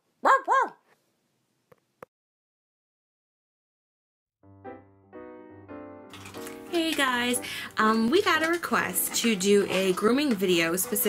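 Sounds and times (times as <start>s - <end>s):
dog barking: 0.2s - 0.9s.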